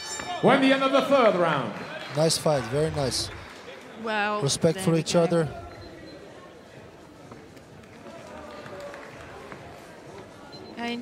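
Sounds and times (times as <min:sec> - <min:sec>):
faint murmur of voices: 0:03.6 - 0:11.0.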